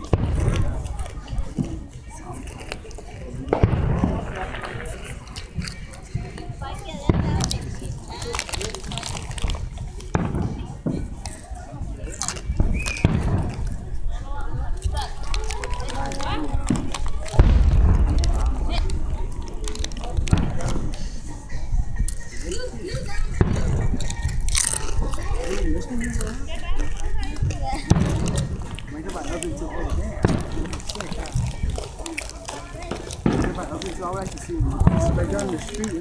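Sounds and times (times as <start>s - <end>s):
people's voices: 0.0s - 36.0s
firework shells bursting in booms: 3.5s - 4.8s, 17.3s - 18.7s.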